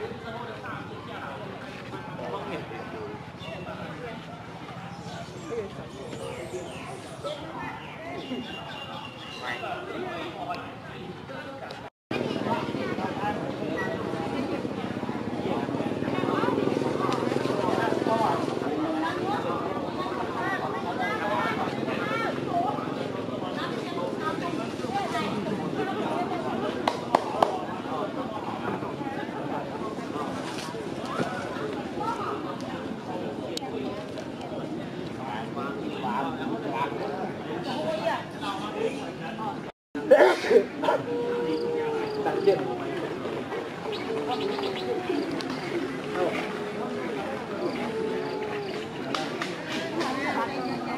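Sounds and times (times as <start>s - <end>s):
people talking: 0.0s - 50.9s
voices: 0.0s - 50.9s
low cooing calls: 40.8s - 49.1s
birds chirping: 43.8s - 49.0s.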